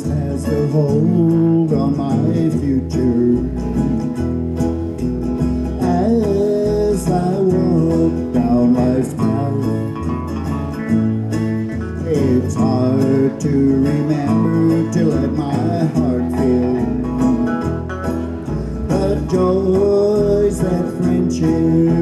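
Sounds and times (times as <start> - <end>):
man singing slow song: 0.0 - 4.0, 5.7 - 10.2, 11.9 - 17.8, 18.6 - 22.0
acoustic guitar strumming: 0.0 - 22.0.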